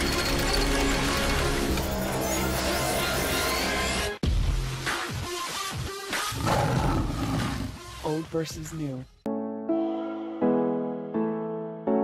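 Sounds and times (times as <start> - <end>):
lion roaring: 6.3 - 7.8.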